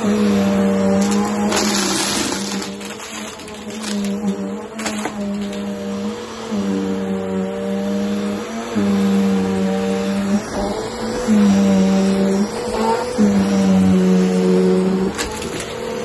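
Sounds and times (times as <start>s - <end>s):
vacuum cleaner running on carpet: 0.0s - 16.0s.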